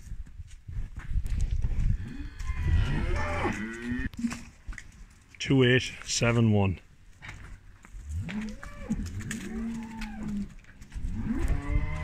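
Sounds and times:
cow mooing: 0:02.0 - 0:04.1, 0:08.2 - 0:10.5, 0:11.1 - 0:12.0.

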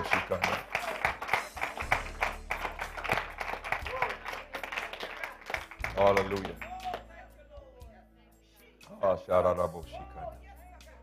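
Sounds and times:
congregation clapping a beat: 0:00.0 - 0:07.2
church music: 0:00.0 - 0:07.6.

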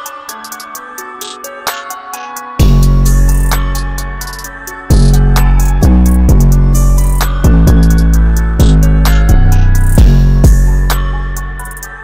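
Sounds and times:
hi-hat roll: 0:02.6 - 0:12.0.

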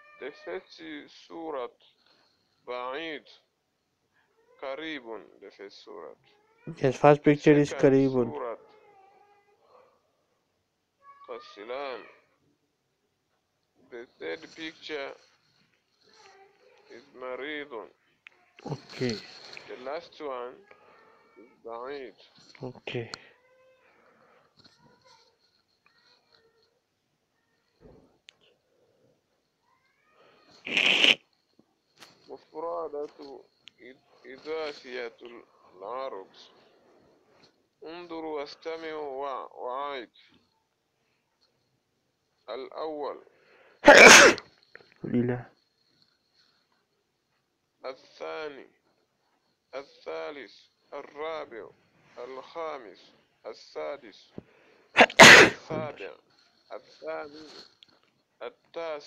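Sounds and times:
person sneezing: 0:30.6 - 0:31.2, 0:43.8 - 0:44.4, 0:55.0 - 0:55.9.

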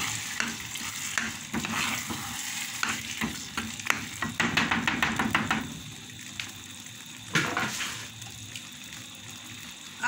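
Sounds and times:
pots simmering on gas stove: 0:00.0 - 0:10.0.

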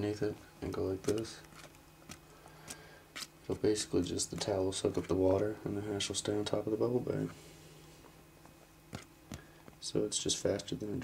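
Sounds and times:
person speaking: 0:00.0 - 0:01.7, 0:03.4 - 0:07.4.

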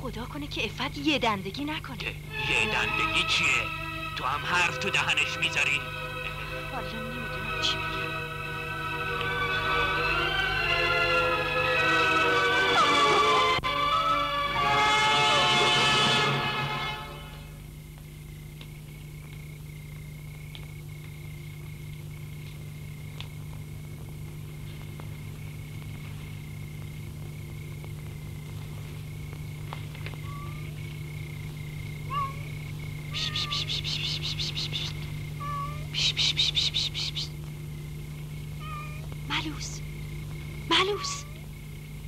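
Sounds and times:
low soundtrack hum: 0:02.2 - 0:18.9
cat meowing faintly: 0:30.0 - 0:30.8, 0:32.0 - 0:34.0, 0:35.4 - 0:36.0, 0:38.6 - 0:39.1, 0:40.7 - 0:41.5.

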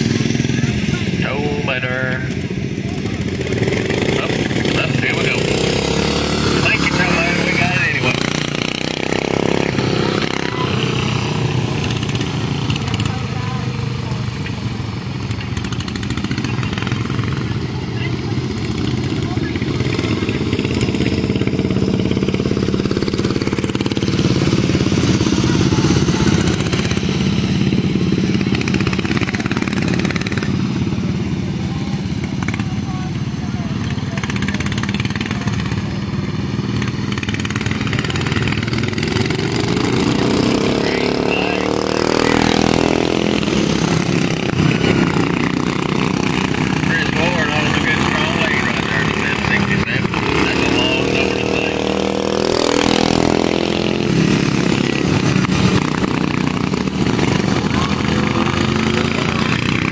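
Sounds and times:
kart engines racing: 0:00.0 - 0:59.9
karts passing close by: 0:00.0 - 0:59.9.

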